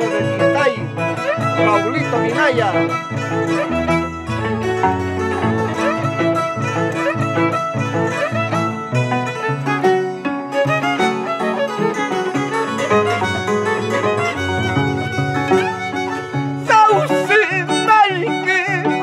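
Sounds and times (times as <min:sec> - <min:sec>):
harp plucking bass line: 0:00.0 - 0:19.0
violin melody: 0:00.0 - 0:19.0.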